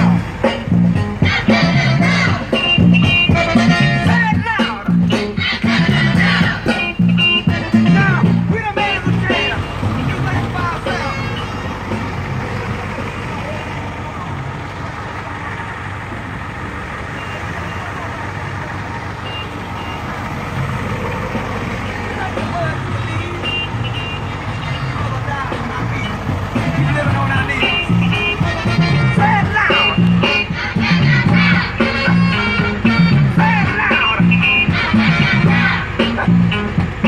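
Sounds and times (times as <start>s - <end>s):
truck engine running: 0.0s - 37.0s.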